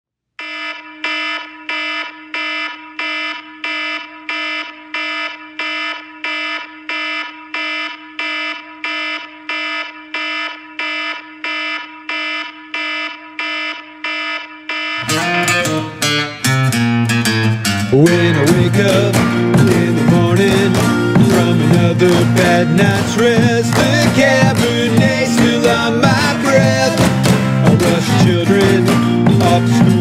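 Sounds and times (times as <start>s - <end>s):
alarm clock beeping: 0.4s - 30.0s.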